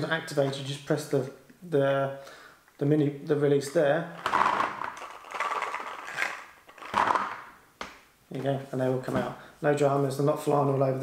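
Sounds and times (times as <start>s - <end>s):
paintballs clattering into plastic tub: 4.2s - 7.5s.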